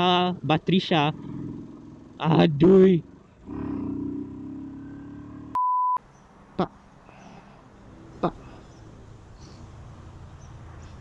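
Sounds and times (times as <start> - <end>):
faint motorcycle engine: 0.0 - 11.0
high electronic censor bleep: 5.5 - 6.0.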